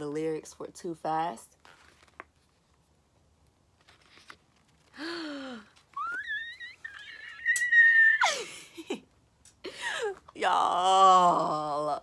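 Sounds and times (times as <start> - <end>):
woman squealing: 5.9 - 8.6
woman groaning: 9.8 - 12.0.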